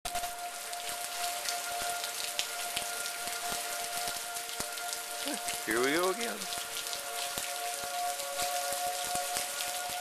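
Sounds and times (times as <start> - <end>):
distant warning siren: 0.1 - 10.0
rain falling: 0.1 - 10.0
raindrops landing close by: 0.1 - 10.0.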